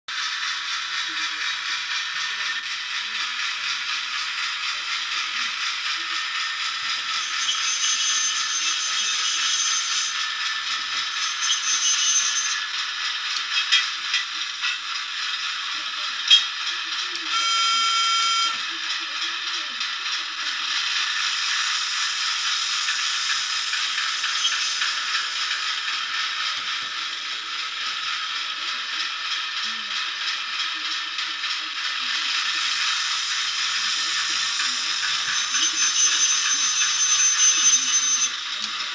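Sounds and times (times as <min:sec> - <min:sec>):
brief high-pitched tone: 0:17.3 - 0:18.6.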